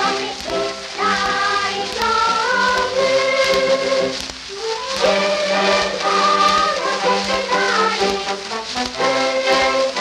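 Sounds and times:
children's song with orchestra: 0.0s - 10.0s
record surface hiss: 0.0s - 10.0s.

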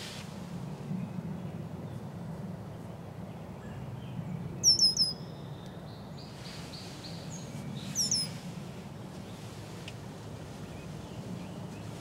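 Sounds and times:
steady low background hum: 0.0s - 12.0s
songbird calling: 4.6s - 8.4s.

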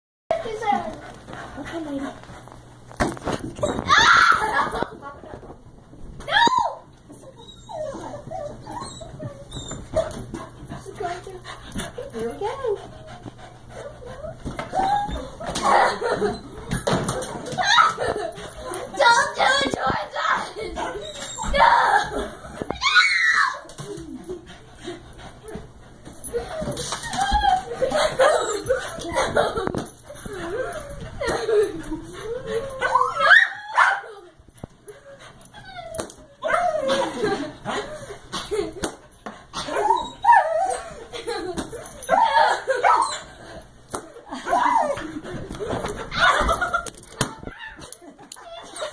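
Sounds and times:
dog whining: 6.4s - 10.2s, 13.7s - 16.9s, 21.0s - 22.0s, 32.2s - 34.2s, 35.0s - 37.2s, 39.6s - 41.0s, 41.9s - 43.3s, 47.4s - 48.9s
small dog whining and yipping: 7.4s - 10.1s.

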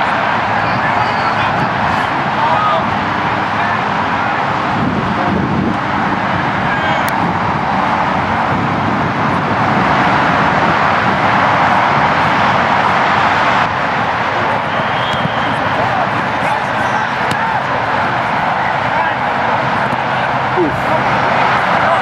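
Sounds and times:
distant engine roar: 0.0s - 22.0s.

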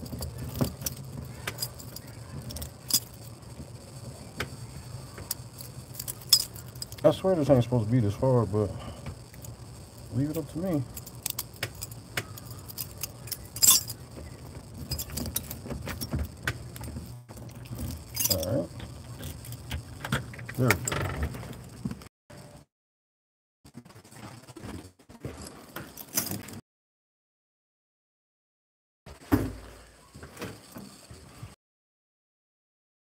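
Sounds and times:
keys jangling: 0.0s - 4.3s, 5.0s - 7.5s, 9.1s - 21.8s, 25.4s - 26.6s
key scraping in door lock: 0.0s - 7.2s, 9.2s - 22.1s.

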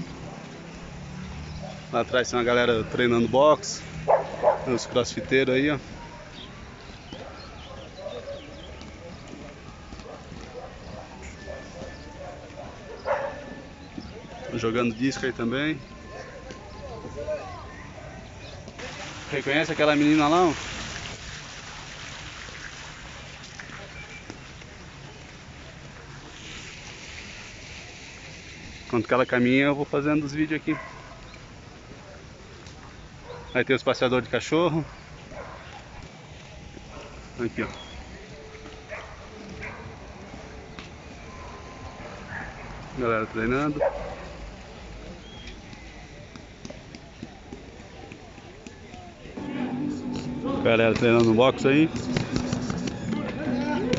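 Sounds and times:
distant indistinct voices: 0.0s - 20.7s, 21.5s - 53.9s
traffic rumble and hiss: 0.0s - 53.9s.

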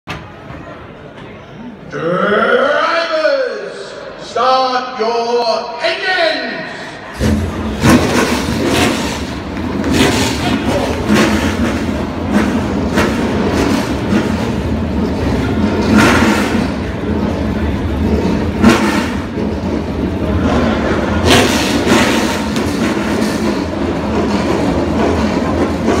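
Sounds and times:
stock car engines rumbling: 6.6s - 26.0s
engine revs: 7.1s - 26.0s.

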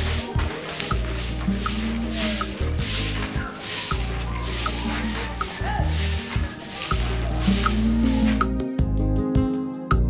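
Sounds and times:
broom sweeping dirt: 0.0s - 8.7s
background music with bass: 0.0s - 10.0s.

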